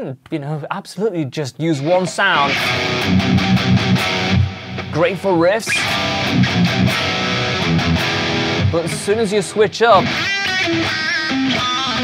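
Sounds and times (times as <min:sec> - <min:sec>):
distorted electric guitar riff: 0:01.8 - 0:12.0.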